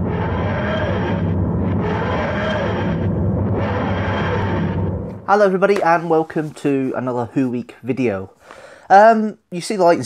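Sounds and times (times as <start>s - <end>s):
low droning bass: 0.0s - 5.3s
dense rumbling soundtrack: 0.0s - 5.4s.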